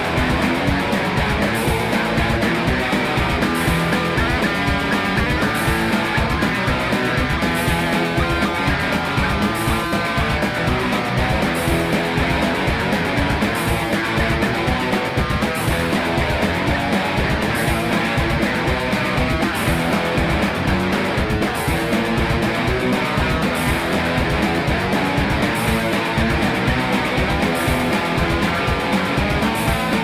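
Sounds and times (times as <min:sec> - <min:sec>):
guitar-led rock music: 0:00.0 - 0:30.0.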